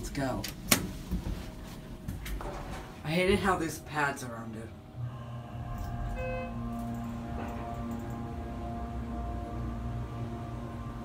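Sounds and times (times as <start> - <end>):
faint steady hum: 0.0 - 11.0
hydraulic elevator rumble: 4.8 - 11.0.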